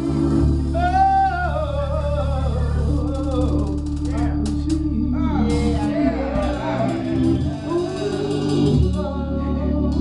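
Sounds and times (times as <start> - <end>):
instrumental accompaniment: 0.0 - 10.0
woman singing gospel: 0.0 - 10.0.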